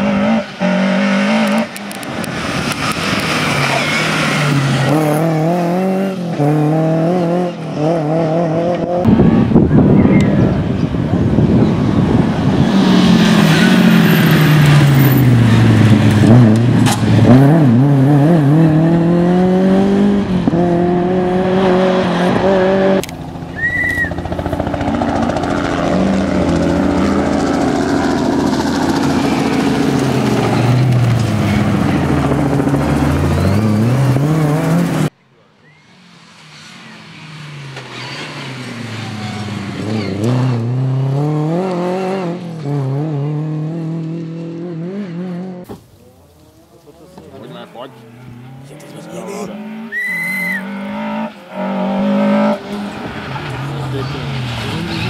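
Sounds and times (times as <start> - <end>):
rally car engine revving: 0.0 - 35.2, 36.1 - 55.0.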